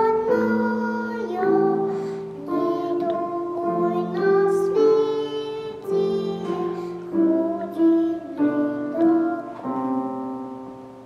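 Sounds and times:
girl singing: 0:00.0 - 0:10.7
instrumental accompaniment: 0:00.0 - 0:11.0.

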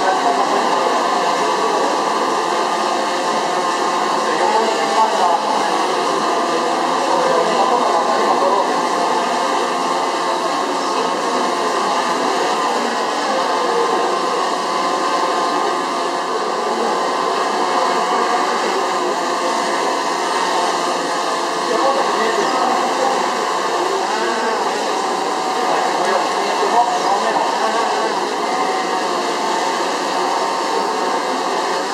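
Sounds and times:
crowd chatter: 0:00.0 - 0:31.9
quadcopter propellers humming: 0:00.0 - 0:31.9.

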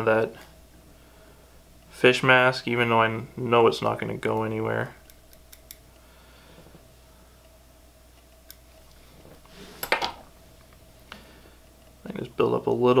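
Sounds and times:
small clicks: 0:04.3 - 0:06.1, 0:07.4 - 0:09.0.

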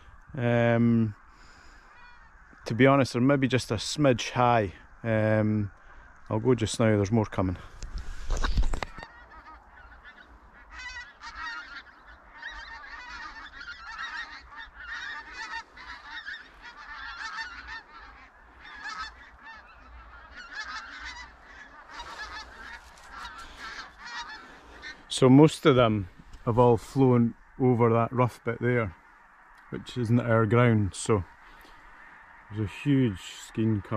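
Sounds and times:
geese calling: 0:00.0 - 0:33.9.

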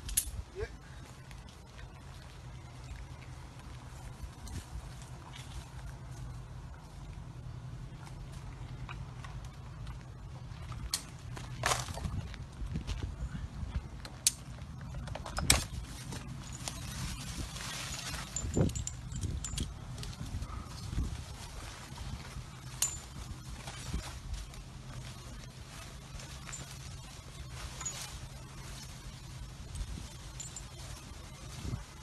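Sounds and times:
low steady hum: 0:00.0 - 0:32.0
climbing gear clinking: 0:13.6 - 0:32.0.

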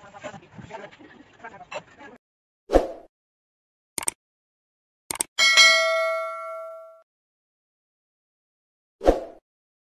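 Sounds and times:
bell ding: 0:05.4 - 0:07.0.

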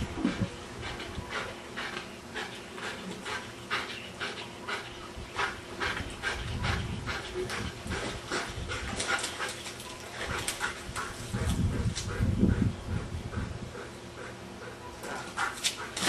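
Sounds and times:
dog breathing while swimming: 0:00.2 - 0:16.0.

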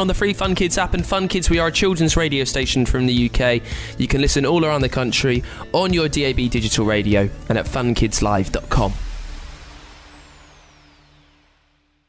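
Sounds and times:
falling whistle-like sweep: 0:09.0 - 0:12.0.

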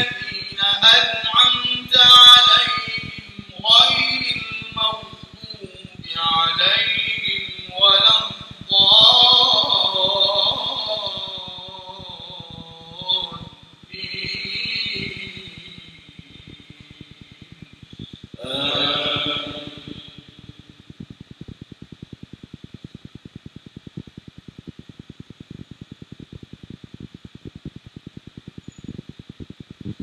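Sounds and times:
chanted prayer call over microphone: 0:00.0 - 0:20.8
faint rapid ticking: 0:00.0 - 0:30.0.

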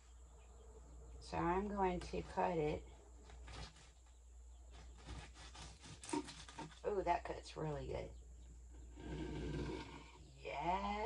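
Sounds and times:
low steady hum: 0:00.0 - 0:11.0
knife sawing through crisp wrapper: 0:04.8 - 0:06.8.

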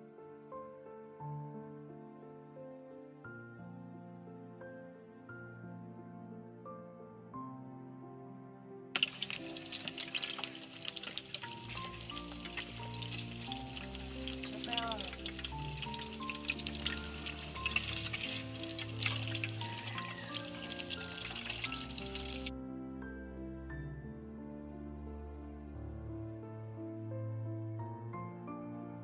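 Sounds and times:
gentle background music: 0:00.0 - 0:29.0
egg sizzling in hot oil: 0:09.0 - 0:22.5.

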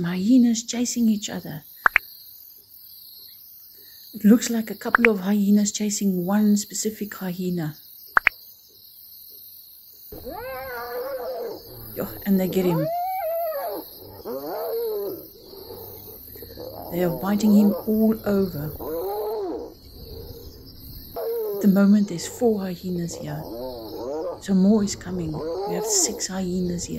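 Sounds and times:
insects chirring: 0:00.0 - 0:26.9
hyena call rising and falling: 0:10.2 - 0:21.7, 0:22.3 - 0:26.4.

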